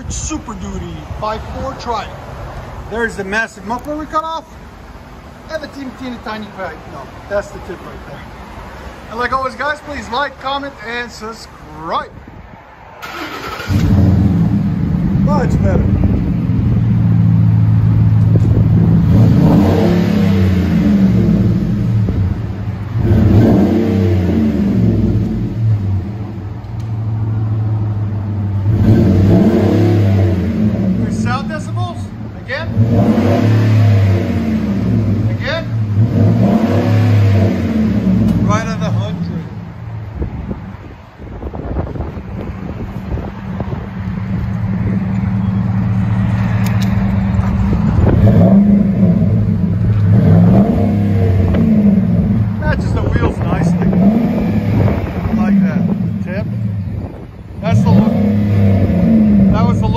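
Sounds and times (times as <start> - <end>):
truck engine revving and idling: 13.0 - 40.8, 41.7 - 59.9.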